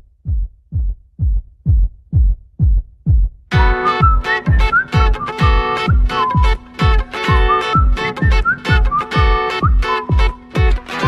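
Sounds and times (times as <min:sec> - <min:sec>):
electronic kick drum thumping: 0:00.0 - 0:11.0.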